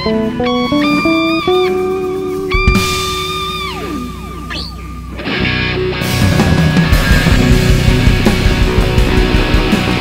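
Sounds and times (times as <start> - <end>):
live jazz fusion band: 0.0 - 4.8
bass and drums: 0.0 - 10.0
electric guitar pitch slides: 0.0 - 10.0.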